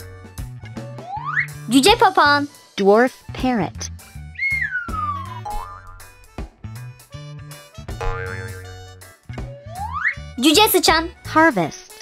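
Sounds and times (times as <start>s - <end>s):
playful children's music: 0.0s - 12.0s
cartoon pitch-glide effects: 4.5s - 6.1s.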